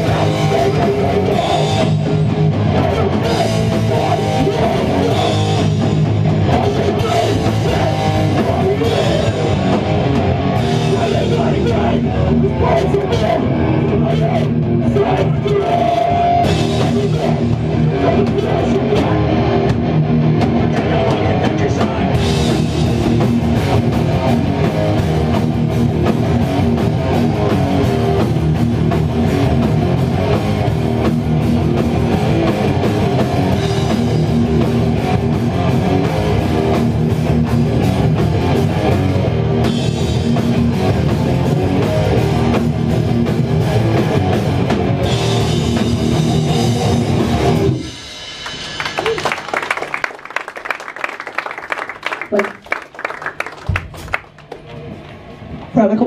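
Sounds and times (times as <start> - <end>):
distorted guitar: 0.0 - 49.9
drum kit: 0.0 - 50.3, 53.3 - 55.7.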